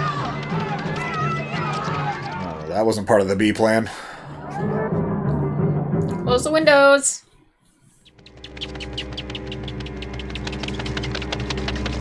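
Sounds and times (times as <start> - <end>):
people running: 0.0 - 3.0, 8.1 - 12.0
sustained film score: 0.0 - 12.0.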